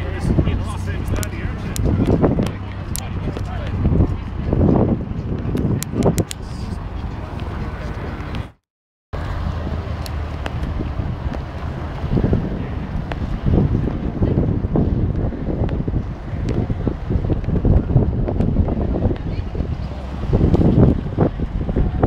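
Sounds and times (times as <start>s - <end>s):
wind buffeting microphone: 0.0s - 8.6s, 9.2s - 22.0s.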